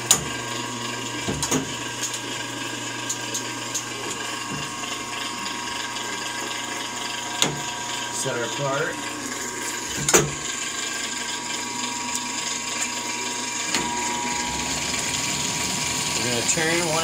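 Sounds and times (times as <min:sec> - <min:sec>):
lathe humming: 0:02.2 - 0:17.0.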